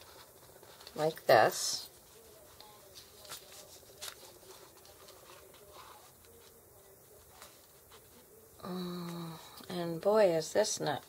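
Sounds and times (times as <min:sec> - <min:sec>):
soft paper ticks and rustles: 0:00.0 - 0:08.3.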